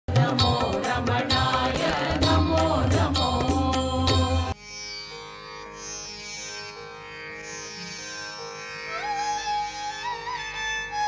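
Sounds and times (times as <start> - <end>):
chanted vocal line: 0.1 - 4.6.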